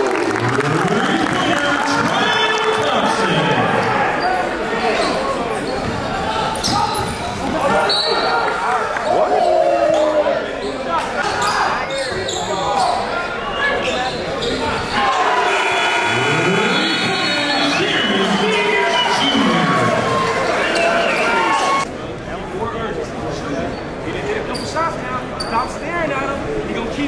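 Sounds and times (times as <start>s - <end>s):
echoing crowd and player voices: 0.0s - 27.0s.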